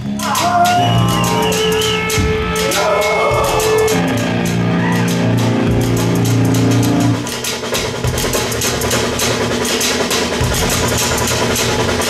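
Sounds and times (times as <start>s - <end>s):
drum and cymbal hits: 0.0s - 12.0s
live band playing: 0.0s - 12.0s.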